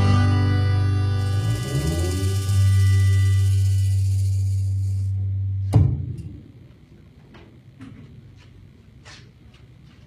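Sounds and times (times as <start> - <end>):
acoustic guitar chord ringing: 0.0 - 5.1
bass guitar note held: 0.0 - 6.6
sharp thump: 5.7 - 6.4.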